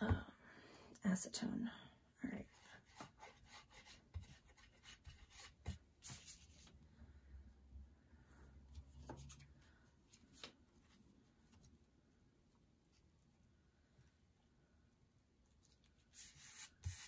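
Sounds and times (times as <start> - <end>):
paper rustling and rubbing: 2.6 - 6.7, 15.6 - 17.0.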